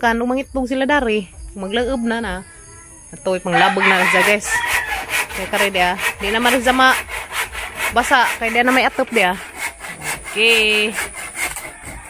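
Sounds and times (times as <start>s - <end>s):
person talking: 10.0s - 11.1s.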